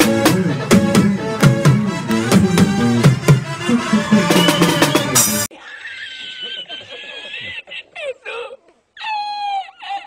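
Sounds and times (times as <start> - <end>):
man laughing in squeaky voice: 5.6 - 10.0.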